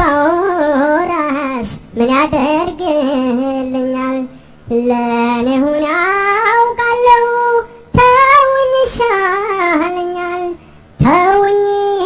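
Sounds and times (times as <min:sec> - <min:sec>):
high voice singing: 0:00.0 - 0:12.0.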